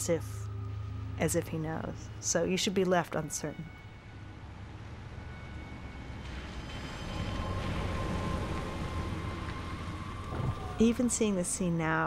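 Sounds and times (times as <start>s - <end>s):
faint steady high tone: 0.0s - 12.0s
low rumbling ambience: 0.0s - 12.0s.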